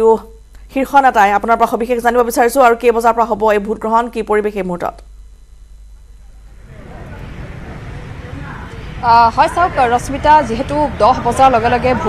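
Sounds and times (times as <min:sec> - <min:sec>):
faint voices: 0:06.0 - 0:12.0
road traffic rumbling: 0:06.5 - 0:12.0.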